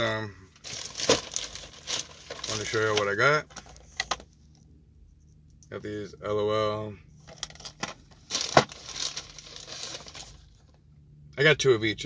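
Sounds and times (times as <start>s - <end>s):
cardboard boxes rustling and crinkling: 0.6s - 3.8s, 7.4s - 10.5s.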